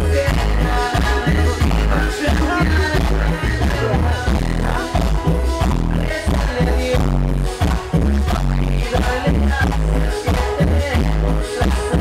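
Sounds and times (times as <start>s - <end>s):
dance music with heavy bass beat: 0.0s - 12.0s.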